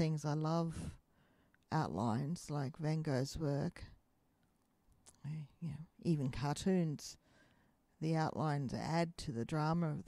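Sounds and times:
person speaking: 0:01.7 - 0:04.0, 0:05.0 - 0:07.2.

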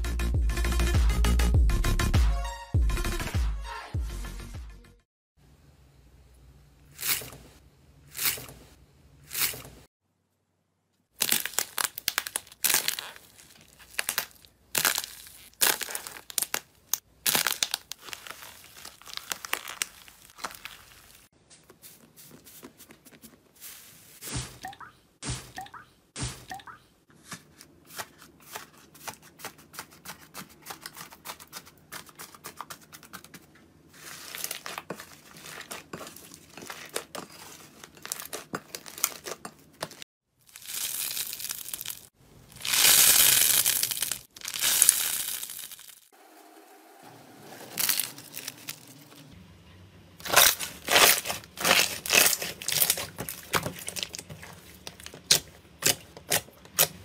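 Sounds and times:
slime sticky tearing and squishing: 0:11.2 - 0:21.3, 0:40.5 - 0:46.0, 0:50.2 - 0:57.0.

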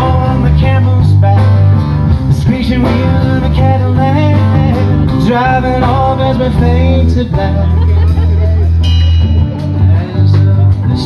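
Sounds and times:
drums: 0:00.0 - 0:11.0
electric bass: 0:00.0 - 0:11.0
melodic instrumental line: 0:00.0 - 0:11.0
person singing: 0:00.0 - 0:11.0.

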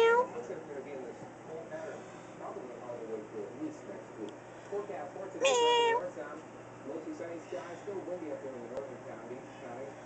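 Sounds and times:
cat meowing: 0:00.0 - 0:00.3, 0:05.4 - 0:06.1.

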